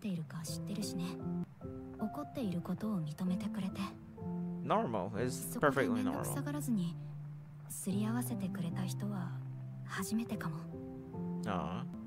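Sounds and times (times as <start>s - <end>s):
soft sustained background music: 0.0s - 12.0s.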